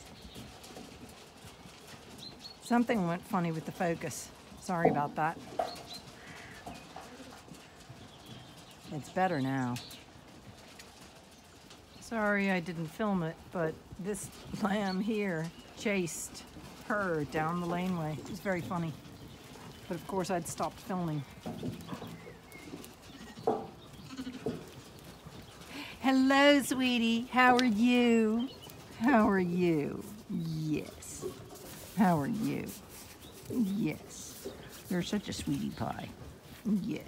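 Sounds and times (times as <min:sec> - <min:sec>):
sheep feeding clicks and rustles: 0:00.0 - 0:37.0.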